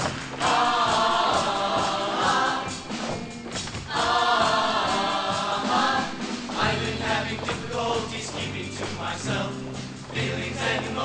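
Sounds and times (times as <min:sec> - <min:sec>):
choir singing: 0:00.3 - 0:03.1, 0:03.9 - 0:11.0.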